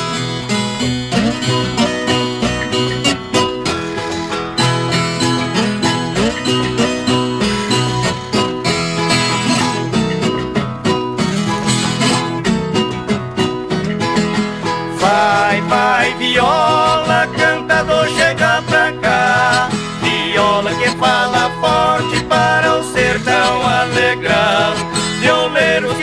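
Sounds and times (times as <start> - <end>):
viola and guitar strumming: 0.0 - 26.0.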